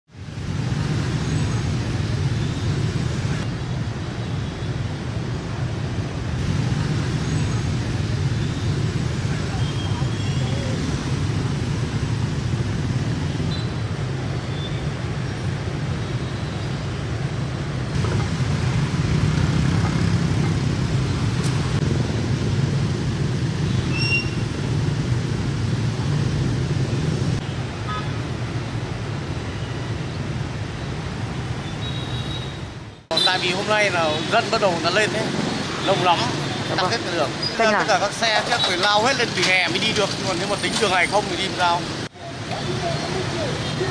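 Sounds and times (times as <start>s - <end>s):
low drone of traffic engines: 0.1s - 43.9s.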